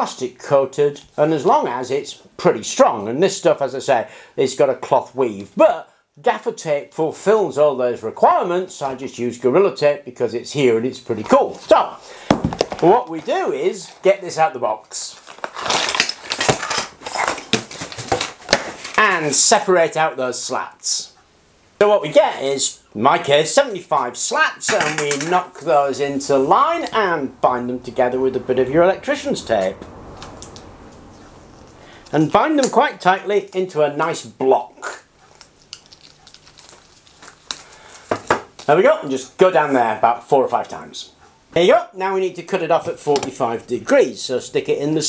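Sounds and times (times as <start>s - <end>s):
plastic slats crackling: 15.2s - 19.0s, 24.6s - 25.7s
tape wrapping clicks: 15.2s - 19.0s, 35.3s - 38.7s.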